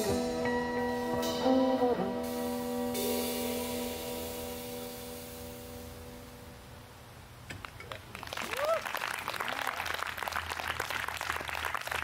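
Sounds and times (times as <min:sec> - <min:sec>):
cymbal wash: 0:00.0 - 0:06.7
sustained band chord: 0:00.0 - 0:06.7.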